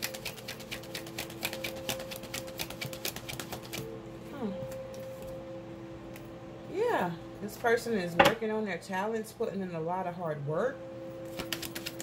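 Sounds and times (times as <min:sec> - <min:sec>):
cards being shuffled: 0:00.0 - 0:03.9, 0:11.3 - 0:12.0.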